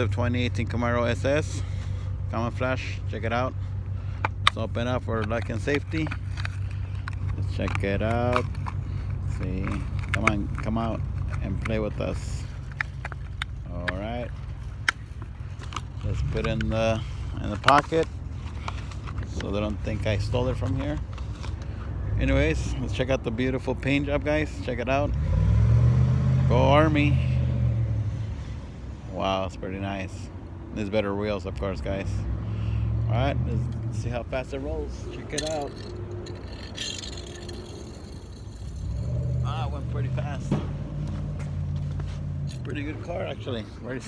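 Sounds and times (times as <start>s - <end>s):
toy car wheels rolling on asphalt: 4.9s - 21.8s, 34.5s - 40.4s.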